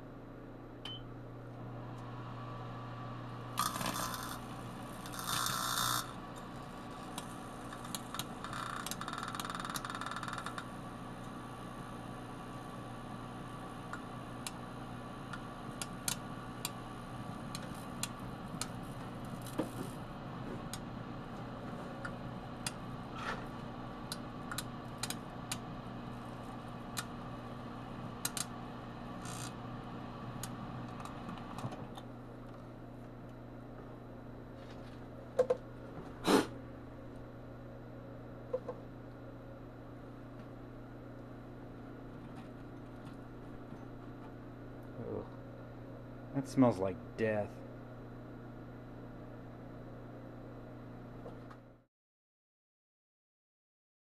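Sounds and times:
microwave oven humming: 0:00.0 - 0:51.8.

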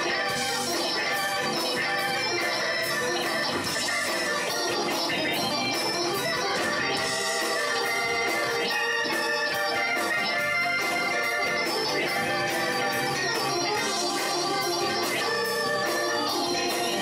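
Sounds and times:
band with drums: 0:00.0 - 0:17.0
organ solo: 0:00.0 - 0:17.0.

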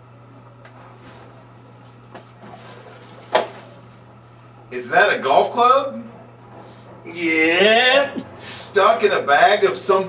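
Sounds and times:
handling knocks and rustles: 0:02.1 - 0:04.0.

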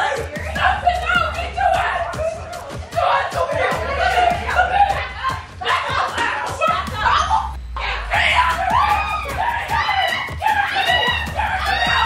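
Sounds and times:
people screaming: 0:00.0 - 0:12.0.

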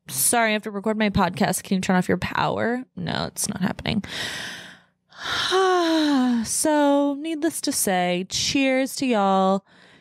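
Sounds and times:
woman breathing in: 0:04.1 - 0:05.6, 0:09.6 - 0:10.0
woman sighing: 0:04.2 - 0:06.4.

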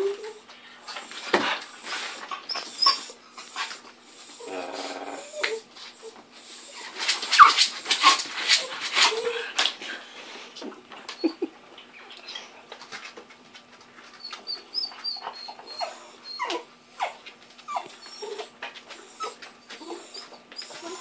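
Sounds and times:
dogs whining and yipping: 0:00.0 - 0:09.5, 0:11.1 - 0:11.5, 0:14.0 - 0:21.0.

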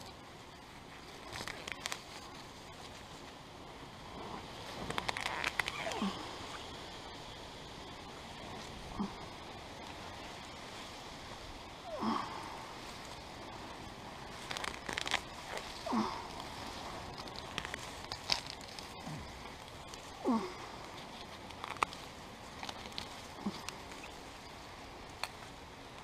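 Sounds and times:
grass pulled from wet soil: 0:14.2 - 0:24.4.

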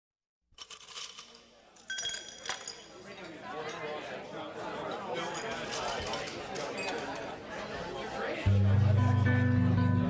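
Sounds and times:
glasses clinking: 0:00.6 - 0:03.9, 0:05.2 - 0:07.3
crowd of voices chattering: 0:02.4 - 0:10.0.

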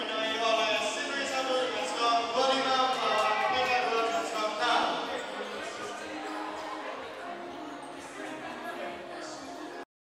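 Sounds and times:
distant voices in hall: 0:00.0 - 0:09.8.

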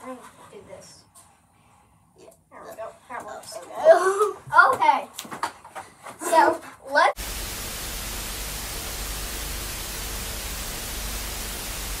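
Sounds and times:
tv static hiss: 0:07.2 - 0:12.0.

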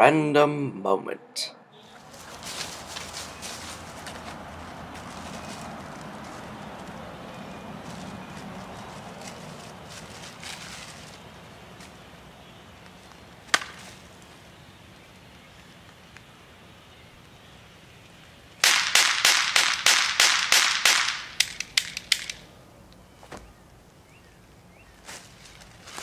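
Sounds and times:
footsteps crunching dry leaves: 0:01.8 - 0:15.9, 0:24.8 - 0:26.0
sharp crack: 0:13.4 - 0:14.1, 0:18.6 - 0:22.5.

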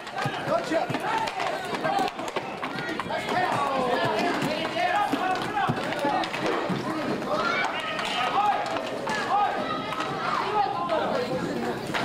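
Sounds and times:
indistinct voices of spectators: 0:00.0 - 0:12.0
sticks and skates clacking: 0:00.0 - 0:12.0.

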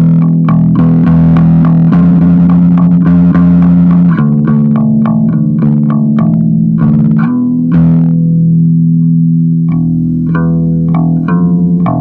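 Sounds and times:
electric bass repeating low note: 0:00.0 - 0:12.0.

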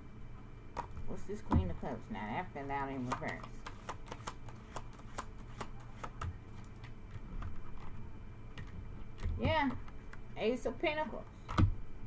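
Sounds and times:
cards being shuffled: 0:02.8 - 0:08.0.

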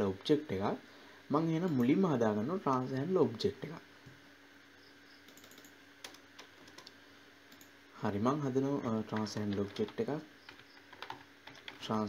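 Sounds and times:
low steady hum: 0:00.0 - 0:12.0
keyboard key presses: 0:09.1 - 0:11.9.

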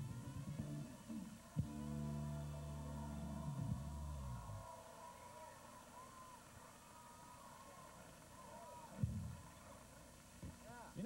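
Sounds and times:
band music: 0:00.0 - 0:04.5
murmur of voices: 0:00.0 - 0:11.0.

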